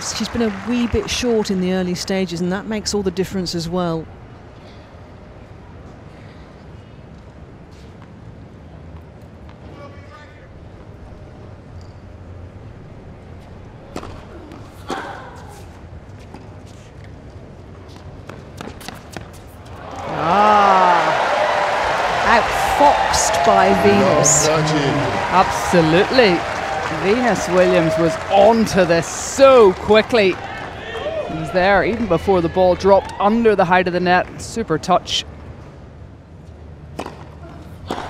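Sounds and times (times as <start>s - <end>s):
crowd cheering: 0.0s - 1.8s, 19.7s - 33.9s
crowd murmur: 19.9s - 32.5s.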